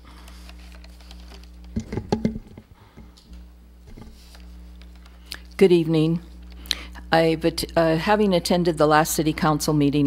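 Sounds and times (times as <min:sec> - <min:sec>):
low electrical hum: 0:00.0 - 0:10.0
microphone handling knocks and rustles: 0:01.7 - 0:03.1, 0:03.9 - 0:04.3.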